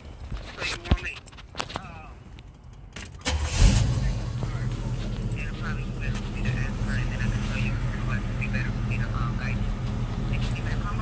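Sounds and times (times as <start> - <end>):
car engine starting and running: 1.9 - 11.0.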